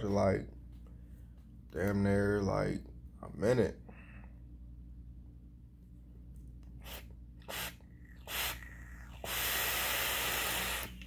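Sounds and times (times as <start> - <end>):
vape draw hiss: 6.8 - 11.0.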